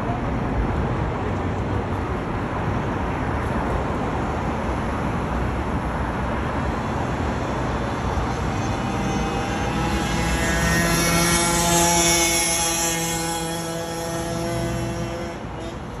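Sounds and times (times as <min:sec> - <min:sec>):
passing motor vehicle engine hum: 0:00.0 - 0:16.0
street traffic noise: 0:00.0 - 0:16.0.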